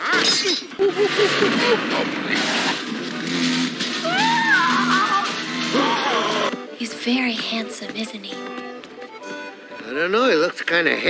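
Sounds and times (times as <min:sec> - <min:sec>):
orchestral film music: 0:01.0 - 0:11.0
cartoon character screaming: 0:04.0 - 0:06.5.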